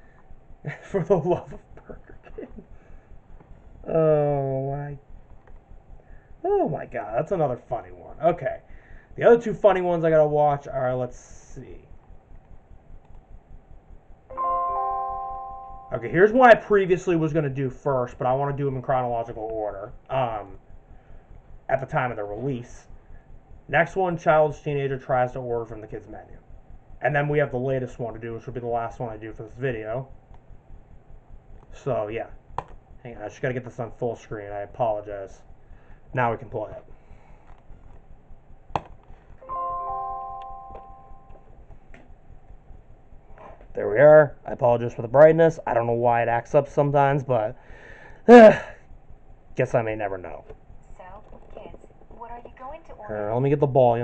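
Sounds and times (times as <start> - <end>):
chime-like musical chord: 14.3 - 16.2, 39.4 - 41.5.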